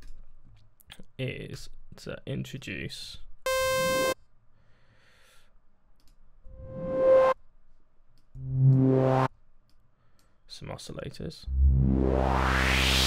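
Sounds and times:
white-noise synth riser: 0:06.5 - 0:07.4, 0:08.4 - 0:09.3, 0:11.5 - 0:13.0
low buzzy synth note: 0:08.4 - 0:09.3, 0:11.5 - 0:13.0.

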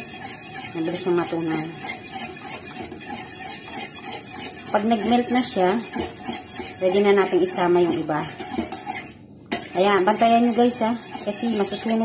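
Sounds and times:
spoon scraping a steel pot: 0:00.0 - 0:12.0.

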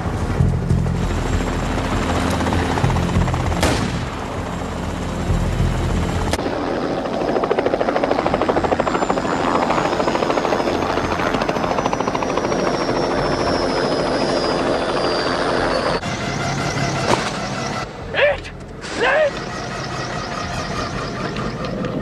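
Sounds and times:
helicopter rotor chop: 0:00.0 - 0:22.0
high turbine whine: 0:00.0 - 0:22.0.

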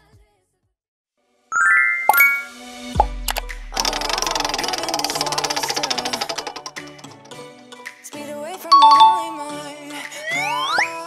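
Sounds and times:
chime: 0:01.6 - 0:02.7, 0:08.7 - 0:09.6
plop with falling pitch: 0:01.6 - 0:03.1
bright music: 0:01.6 - 0:03.6, 0:08.6 - 0:10.8
spinning wheel clicking: 0:03.3 - 0:07.4.

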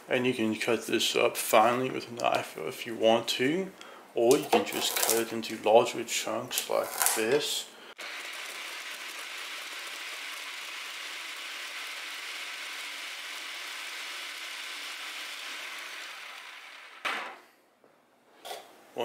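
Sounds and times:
food processor chopping: 0:08.0 - 0:17.3.

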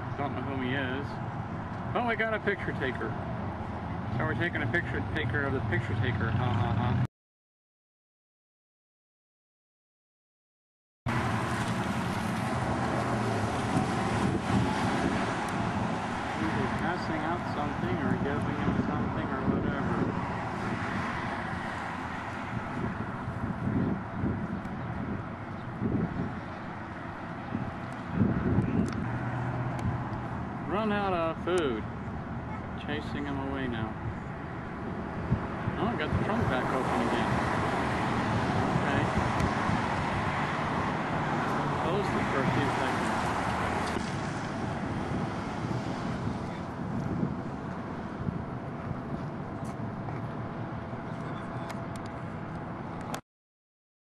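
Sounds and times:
road traffic rumble: 0:00.0 - 0:07.1, 0:11.1 - 0:53.2
wind buffeting microphone: 0:11.2 - 0:32.8, 0:33.6 - 0:53.2.

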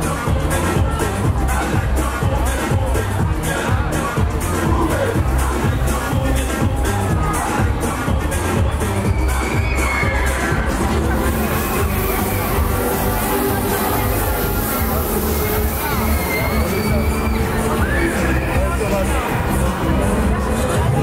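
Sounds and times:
crowd noise: 0:00.0 - 0:21.0
electronic dance music: 0:00.0 - 0:21.0
people shouting and cheering: 0:00.0 - 0:21.0.

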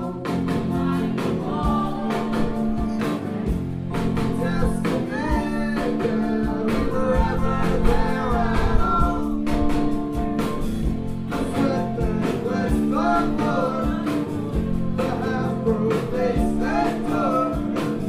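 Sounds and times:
person singing: 0:00.0 - 0:09.7, 0:11.2 - 0:18.0
electric guitar: 0:00.0 - 0:18.0
ska-punk band playing live: 0:00.0 - 0:18.0
steady drum beat: 0:00.0 - 0:18.0.

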